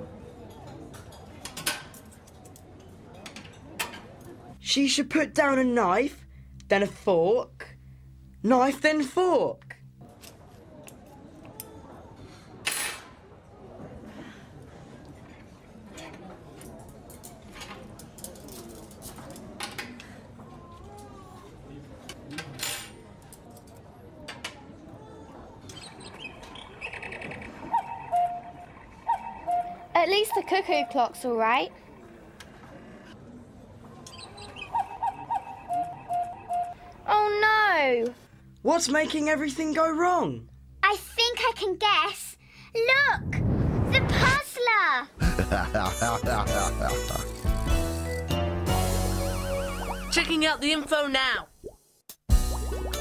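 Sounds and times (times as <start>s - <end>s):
cuckoo clock calling: 25.8s - 31.2s, 34.1s - 36.8s, 45.9s - 48.3s, 49.1s - 50.4s.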